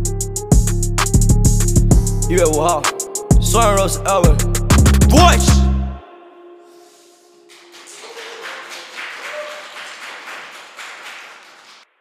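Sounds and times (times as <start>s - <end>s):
small group clapping: 7.5s - 11.9s.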